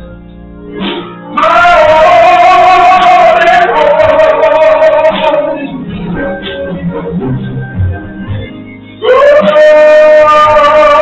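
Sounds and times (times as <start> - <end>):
organ: 0.0 - 11.0
choir singing a hymn: 1.4 - 7.2.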